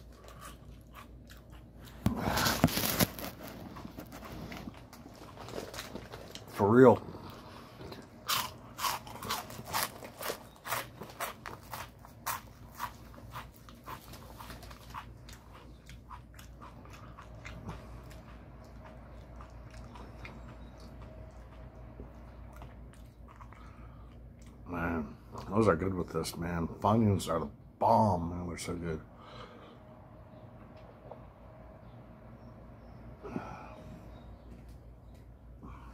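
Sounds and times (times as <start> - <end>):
crunchy snack being bitten: 0.0 - 21.5
chewing: 0.0 - 24.6.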